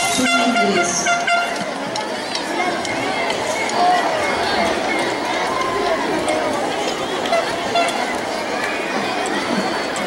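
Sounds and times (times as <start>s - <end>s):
noisemaker horns tooting: 0.0s - 1.7s, 6.8s - 8.2s
voices calling: 0.0s - 10.0s.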